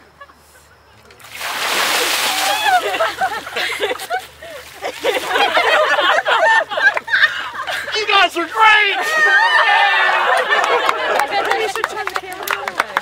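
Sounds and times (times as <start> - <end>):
water splashing: 1.2 - 6.0
people yelping excitedly: 2.3 - 3.2, 7.1 - 11.2.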